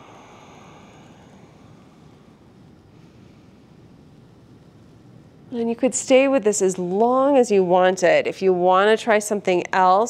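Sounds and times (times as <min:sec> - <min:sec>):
soft breath: 0:00.0 - 0:04.0
low steady rumble: 0:00.0 - 0:10.0.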